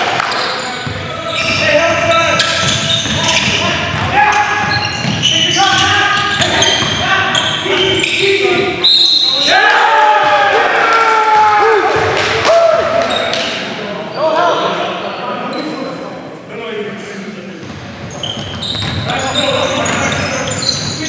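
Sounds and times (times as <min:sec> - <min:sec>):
sneakers squeaking: 0:00.0 - 0:09.6, 0:12.8 - 0:16.1, 0:17.6 - 0:21.0
players calling out: 0:00.0 - 0:14.8
basketball bouncing on hardwood: 0:02.6 - 0:04.1.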